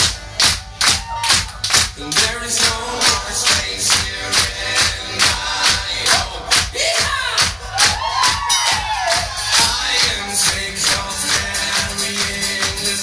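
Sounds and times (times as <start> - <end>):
people clapping along: 0.0 - 13.0
crowd whooping and shouting: 0.6 - 1.7, 6.8 - 10.8.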